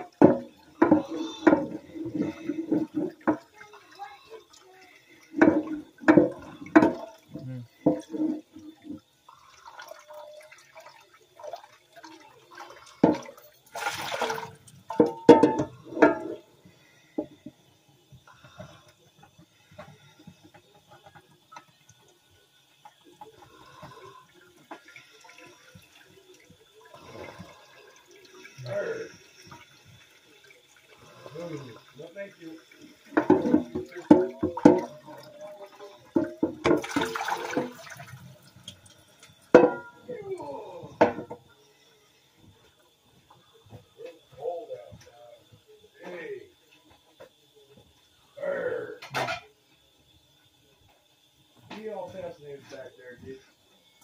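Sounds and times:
dishes clattering: 0:00.0 - 0:03.5, 0:05.4 - 0:07.2, 0:07.8 - 0:08.6, 0:13.0 - 0:13.6, 0:14.3 - 0:16.5, 0:33.0 - 0:35.1, 0:36.1 - 0:37.9, 0:39.5 - 0:40.1, 0:41.0 - 0:41.5, 0:49.0 - 0:49.5
tap running: 0:00.0 - 0:04.1, 0:05.2 - 0:09.0, 0:28.3 - 0:35.2, 0:35.8 - 0:40.0.

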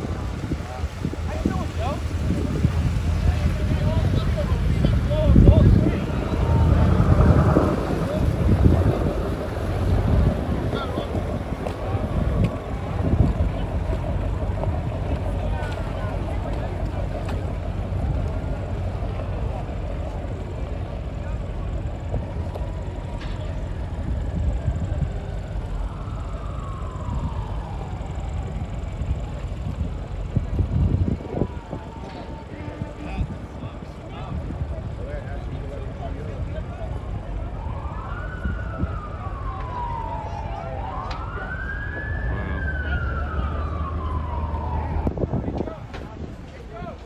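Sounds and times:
boat engine running: 0:00.0 - 0:37.5
wind buffeting microphone: 0:00.0 - 0:47.0.

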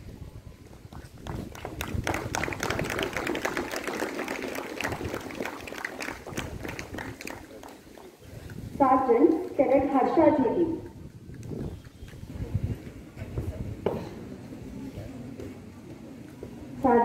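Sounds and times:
audience applauding: 0:01.2 - 0:08.2.

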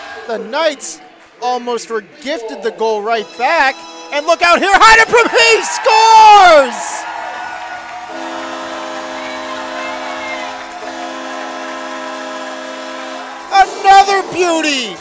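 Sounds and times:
crowd cheering: 0:00.0 - 0:15.0
goal horn sounding a chord: 0:08.1 - 0:14.9.

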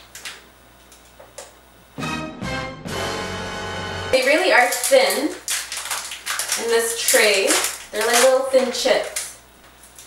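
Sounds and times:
plastic snack bag crinkling: 0:04.2 - 0:10.0.

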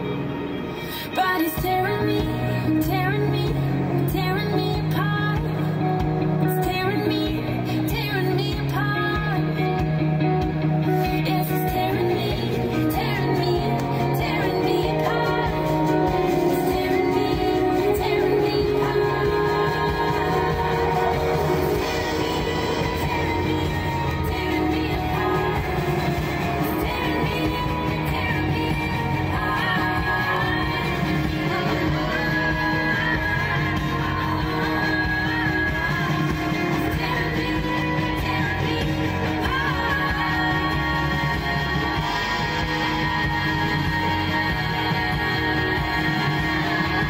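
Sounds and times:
pop song on a radio: 0:00.0 - 0:47.0.

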